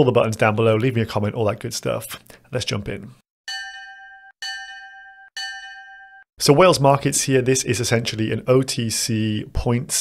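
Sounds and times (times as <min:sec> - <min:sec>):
bell-like chime: 0:03.5 - 0:06.3.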